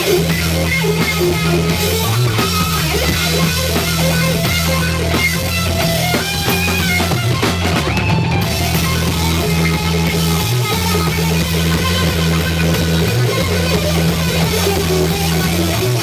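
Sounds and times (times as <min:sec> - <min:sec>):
distorted electric guitar: 0:00.0 - 0:16.0
drum kit: 0:00.0 - 0:16.0
electric bass: 0:00.0 - 0:16.0.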